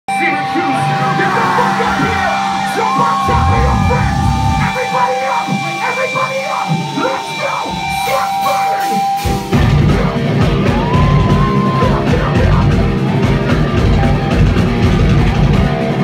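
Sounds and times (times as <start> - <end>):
metalcore band playing live: 0.1 - 16.0
person yelling and singing: 1.4 - 9.0, 10.8 - 12.8.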